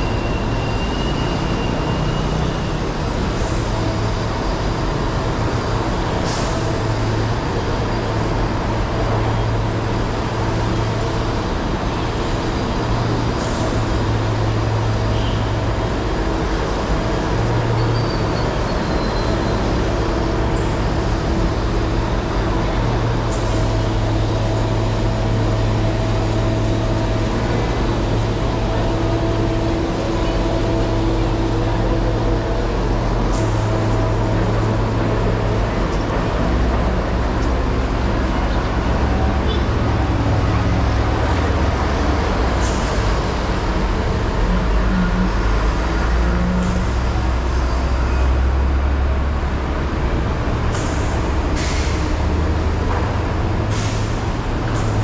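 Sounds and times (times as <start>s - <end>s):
diesel trucks and buses rumbling: 0.0s - 55.0s
air brake hisses: 50.8s - 52.1s, 53.7s - 54.2s.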